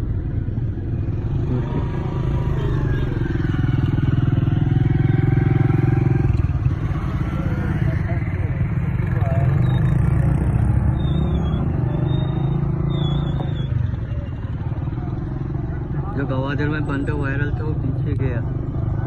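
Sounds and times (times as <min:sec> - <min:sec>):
motorcycle engine rumbling: 0:00.0 - 0:19.0
people talking: 0:07.2 - 0:10.0.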